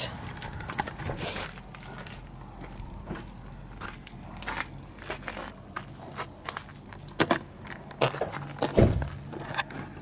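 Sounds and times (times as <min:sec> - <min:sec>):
light metallic jingling: 0:00.3 - 0:07.2.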